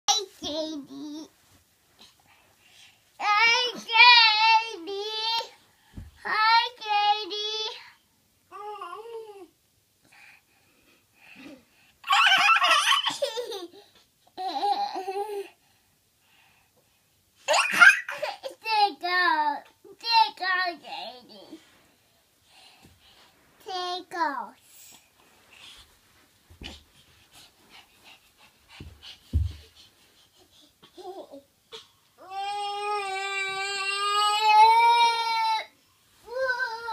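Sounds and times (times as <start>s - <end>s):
child panting: 26.6s - 31.9s
soft thump: 28.8s - 29.7s.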